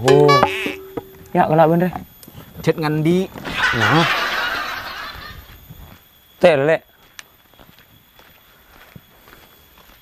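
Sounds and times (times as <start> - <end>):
person snickering: 3.5 - 5.4.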